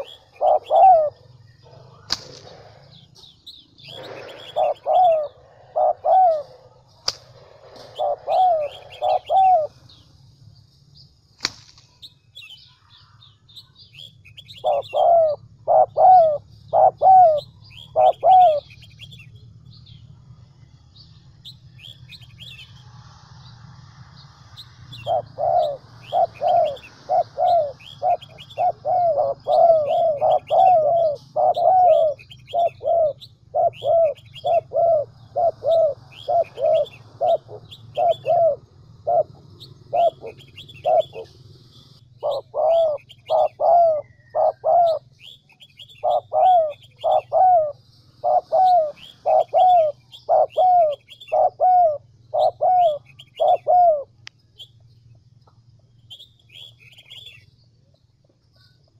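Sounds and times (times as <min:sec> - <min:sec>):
dove cooing: 0:00.0 - 0:10.0, 0:14.4 - 0:19.2, 0:24.9 - 0:41.6, 0:42.2 - 0:54.2
small birds chirping: 0:00.0 - 0:58.9
steady low hum: 0:00.0 - 0:58.9.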